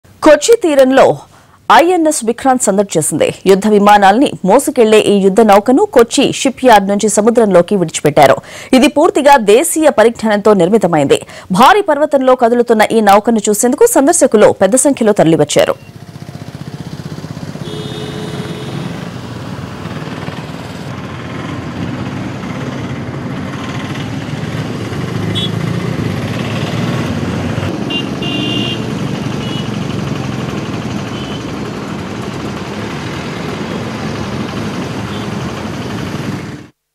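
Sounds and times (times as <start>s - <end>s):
engines rumbling: 15.7s - 36.7s
harbour noise: 15.9s - 36.7s.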